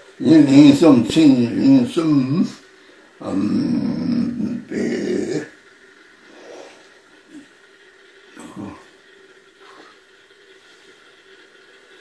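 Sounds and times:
monk chanting prayer: 0.2 - 2.6, 3.2 - 5.5.

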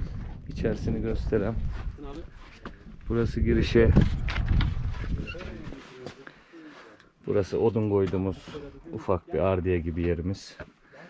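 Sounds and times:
man speaking: 5.2 - 11.0.

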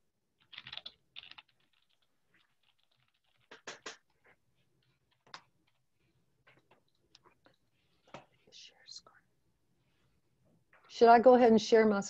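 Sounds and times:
faint whispering: 8.3 - 9.4.

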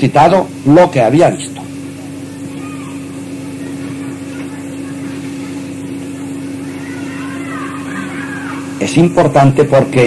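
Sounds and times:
steady electrical hum: 0.0 - 10.0
faint voice: 2.1 - 8.8.

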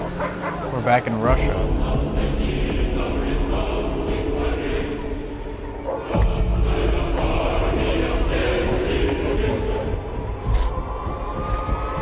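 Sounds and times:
low rumble: 1.3 - 12.0.

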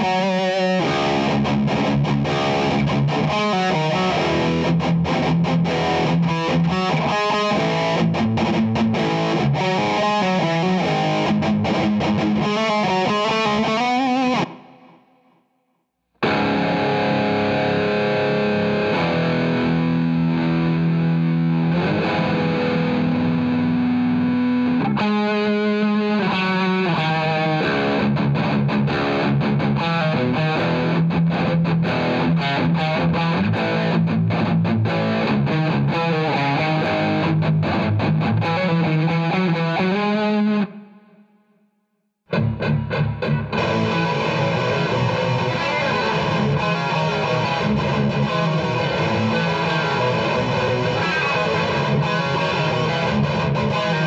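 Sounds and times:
distorted electric guitar riff: 0.0 - 15.4, 16.2 - 41.4, 42.3 - 54.0.

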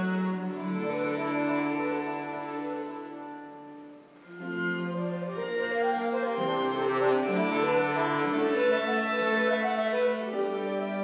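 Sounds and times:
accordion playing held chords: 4.3 - 10.4.

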